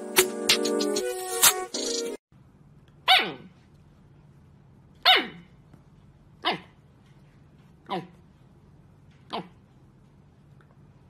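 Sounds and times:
puppy barking: 3.0s - 3.5s, 5.0s - 5.5s, 6.4s - 6.8s, 7.9s - 8.2s, 9.3s - 9.6s.

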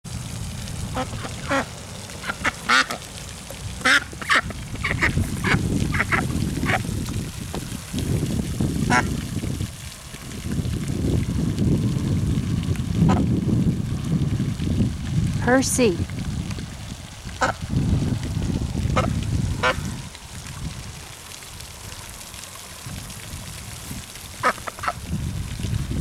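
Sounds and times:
steady low rumble: 0.1s - 26.0s
duck quacking: 1.0s - 3.0s, 3.8s - 6.8s, 19.0s - 19.8s, 24.4s - 25.0s.

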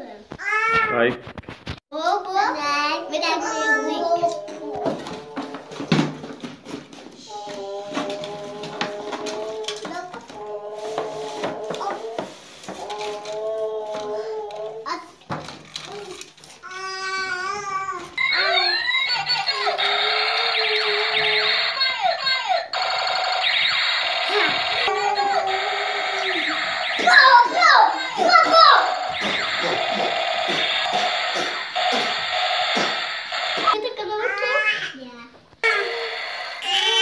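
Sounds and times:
toy robot siren-like tones: 18.2s - 33.8s, 35.6s - 37.0s.

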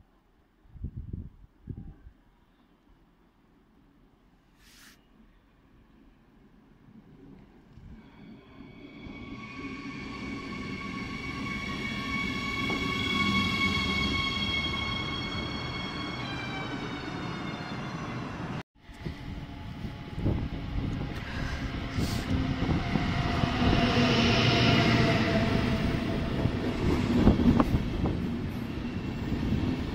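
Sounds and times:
high whine of train: 5.3s - 29.9s
train rumble: 6.4s - 29.9s.

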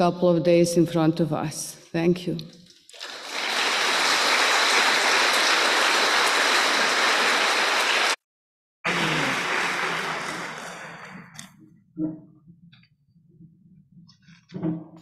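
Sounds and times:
audience applauding: 3.0s - 8.2s, 8.9s - 11.4s.

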